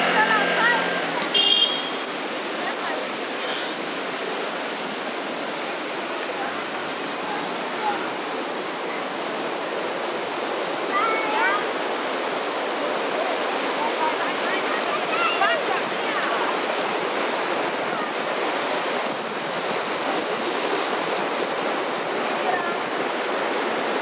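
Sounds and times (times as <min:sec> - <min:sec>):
passers-by's voices: 0:00.0 - 0:01.5, 0:12.8 - 0:19.7, 0:22.2 - 0:23.1
fast-flowing stream: 0:00.0 - 0:24.0.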